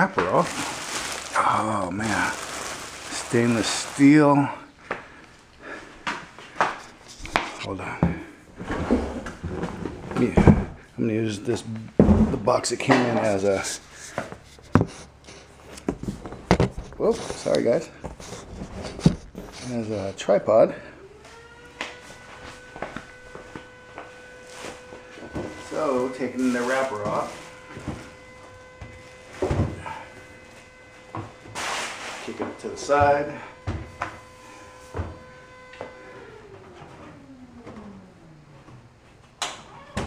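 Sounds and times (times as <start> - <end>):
footsteps: 0.0 - 10.8, 21.2 - 36.0.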